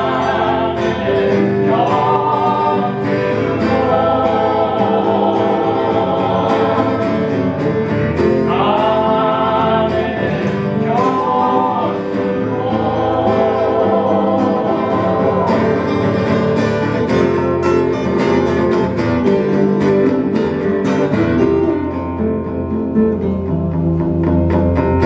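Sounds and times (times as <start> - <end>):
woman singing backing vocals: 0.0 - 7.2, 8.5 - 16.1
man singing lead: 0.0 - 16.6
strummed acoustic guitars: 0.0 - 25.0.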